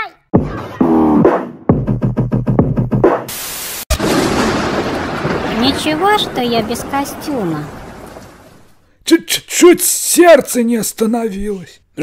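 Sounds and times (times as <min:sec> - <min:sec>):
thunder rumble: 0:03.9 - 0:08.8.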